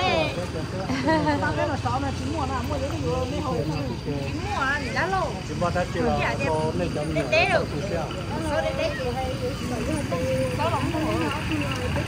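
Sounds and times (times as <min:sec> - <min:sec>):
women talking: 0:01.2 - 0:03.5, 0:07.2 - 0:12.0.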